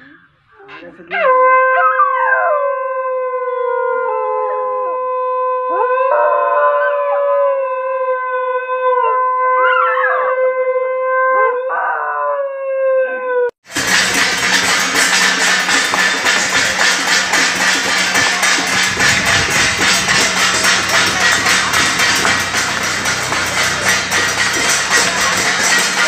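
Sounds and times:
conch shell blown: 0:13.9 - 0:26.0.

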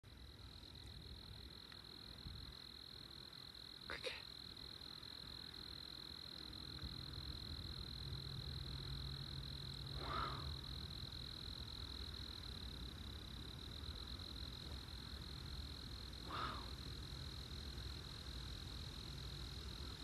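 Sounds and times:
low steady hum: 0:00.0 - 0:20.0
crickets trilling: 0:00.1 - 0:20.0.

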